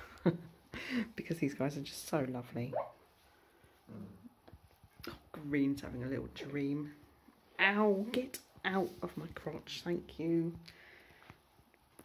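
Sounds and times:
puppy whimpering: 2.7s - 3.0s.

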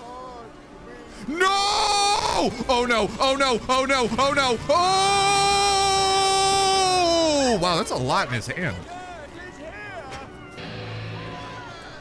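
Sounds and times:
background music: 0.0s - 12.0s
character speaking: 2.3s - 5.1s.

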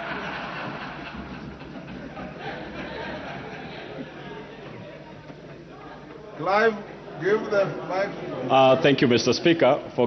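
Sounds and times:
murmur of many people talking: 0.0s - 10.0s.

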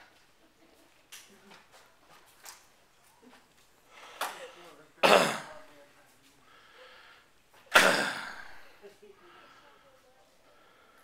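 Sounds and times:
throat clearing: 5.0s - 5.6s, 7.7s - 8.6s.

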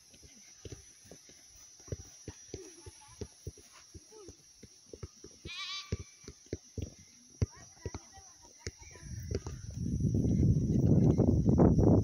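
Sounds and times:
soccer ball thuds on grass: 0.1s - 11.2s
high wavering animal call: 5.5s - 6.0s.

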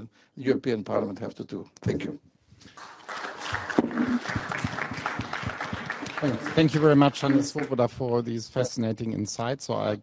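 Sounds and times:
audience applauding: 2.7s - 8.3s.

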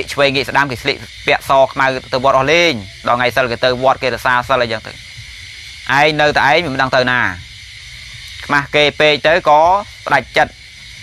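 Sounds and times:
man speaking: 0.0s - 5.0s, 5.9s - 7.4s, 8.3s - 10.6s
recording hiss: 0.0s - 11.0s.

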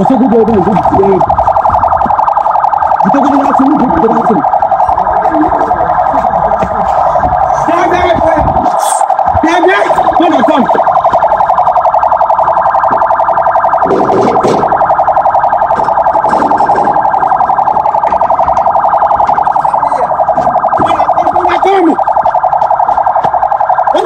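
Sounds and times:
pulsing electronic alarm tone: 0.0s - 24.0s
faint voices: 3.0s - 11.1s.

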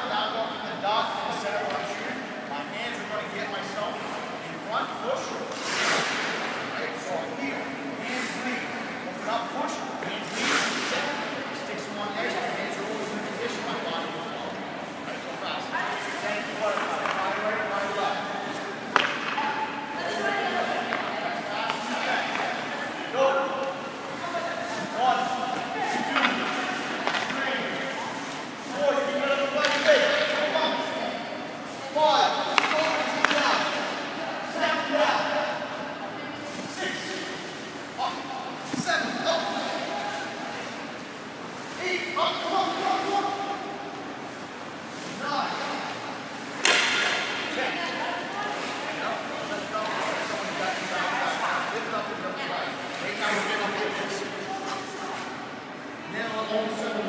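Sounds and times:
skates scraping on ice: 5.5s - 6.5s
hockey pucks cracking off stick: 18.8s - 19.6s, 32.5s - 33.8s, 46.5s - 47.5s.

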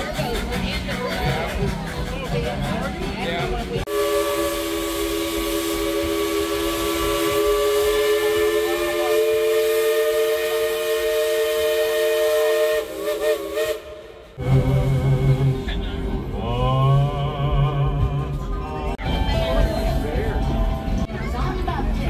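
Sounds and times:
steam locomotive whistle chord: 3.9s - 16.4s.

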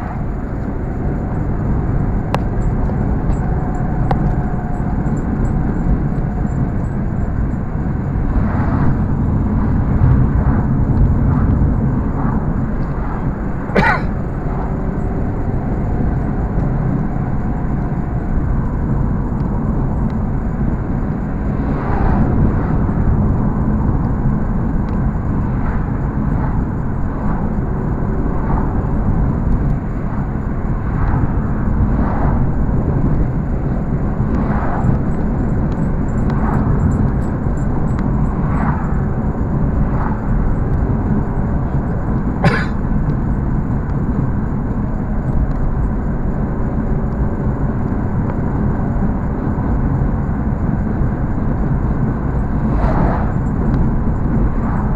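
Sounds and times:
car road and engine noise: 0.0s - 54.9s.

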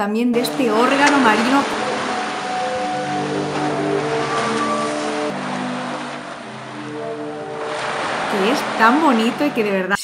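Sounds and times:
sea waves washing: 0.4s - 9.9s
sustained pipe-like tones: 0.4s - 10.0s.

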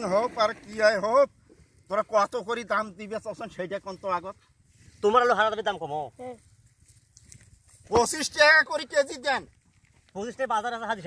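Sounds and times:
man talking: 5.0s - 6.4s, 7.9s - 9.5s, 10.1s - 11.0s.

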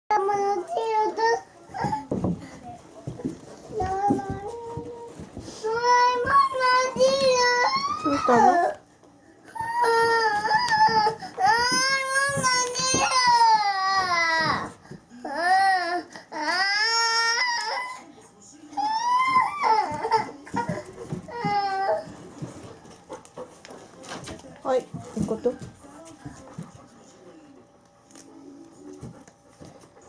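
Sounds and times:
dog claws tapping on floor: 1.7s - 8.8s, 9.5s - 15.0s, 19.2s - 26.8s.

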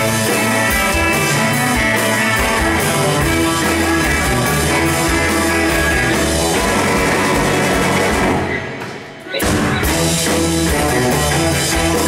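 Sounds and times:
bass guitar: 0.0s - 12.0s
drum kit: 0.0s - 12.0s
electric guitars: 0.0s - 12.0s.

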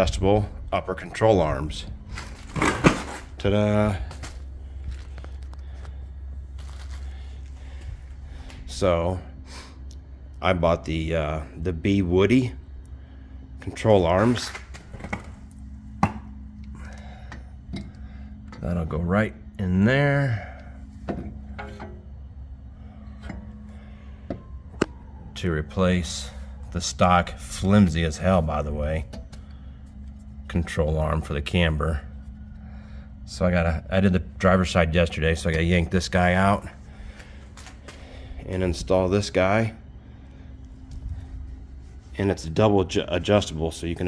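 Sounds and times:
steady low hum: 0.0s - 44.0s
handling noise: 2.0s - 3.4s.

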